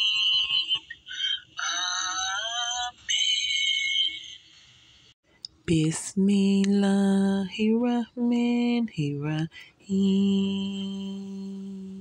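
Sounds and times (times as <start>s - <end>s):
high-pitched synthetic voice chanting: 0.0s - 4.4s.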